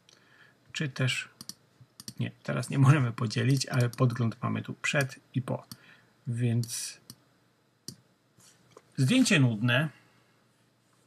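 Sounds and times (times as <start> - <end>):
computer mouse clicks: 1.4 - 2.2, 3.5 - 4.1, 6.6 - 7.2.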